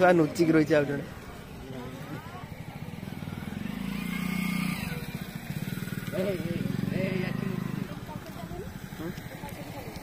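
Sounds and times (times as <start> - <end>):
small engine pulsing hum: 1.1 - 10.0.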